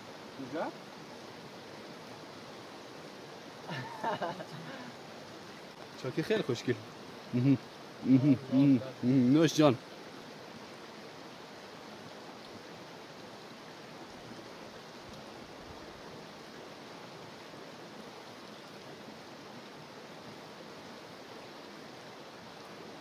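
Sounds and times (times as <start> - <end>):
stream rushing over rocks: 0.0 - 23.0.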